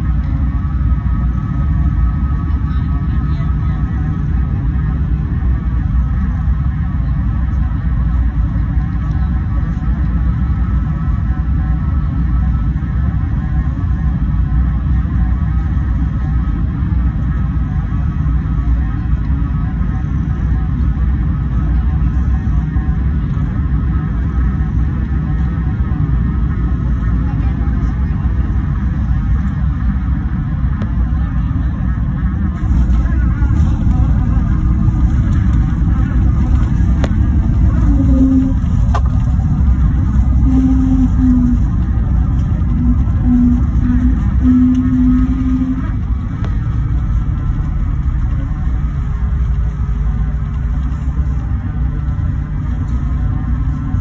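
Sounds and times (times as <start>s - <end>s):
airplane cabin rumble: 0.0s - 54.0s
short low tones: 40.2s - 46.6s.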